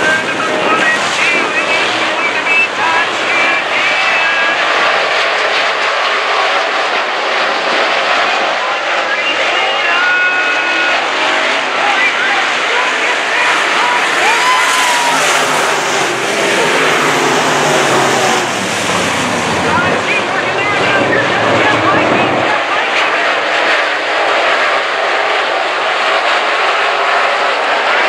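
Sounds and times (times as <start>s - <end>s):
race car engines: 0.0s - 28.0s
deep engine sound: 12.4s - 22.8s.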